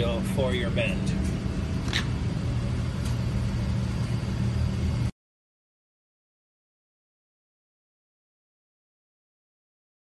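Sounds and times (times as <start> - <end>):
hydraulic pump motor humming: 0.0 - 5.0.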